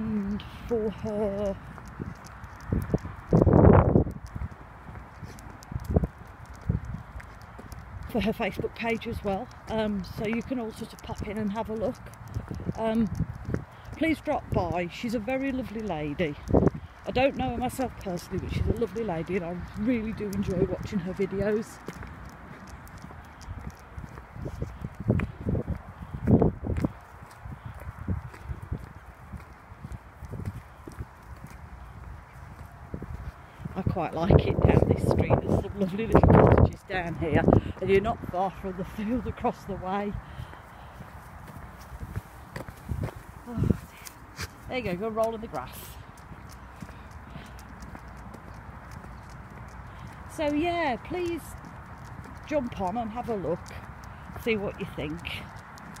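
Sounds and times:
footsteps on tarmac: 0.0s - 56.0s.

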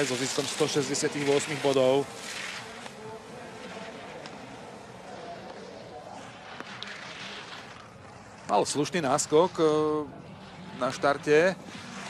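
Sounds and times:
skis scraping on hard snow: 0.0s - 12.0s.

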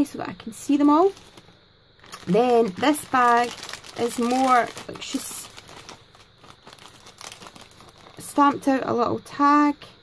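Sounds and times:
plastic bag crinkling: 0.7s - 8.7s.

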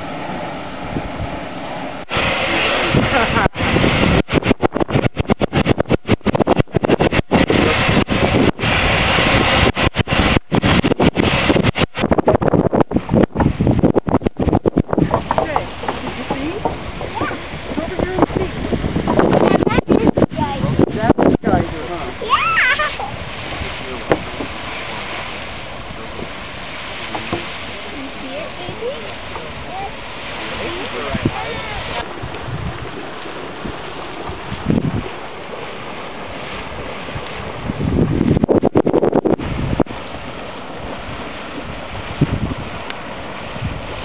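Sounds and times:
geyser rushing water and steam: 0.0s - 44.0s
wind buffeting microphone: 0.0s - 44.0s.

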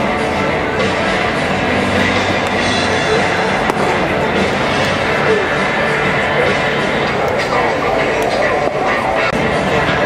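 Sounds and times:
ballpark background noise: 0.0s - 10.0s
baseball popping into mitt: 3.6s - 5.0s.

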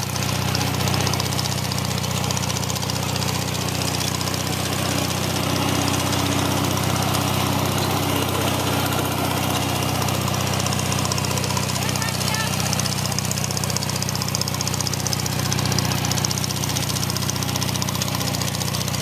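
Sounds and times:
garden tractor engine running: 0.0s - 19.0s.

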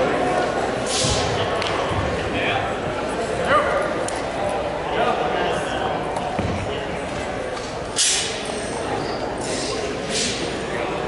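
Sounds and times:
indistinct voices murmuring: 0.0s - 11.0s.

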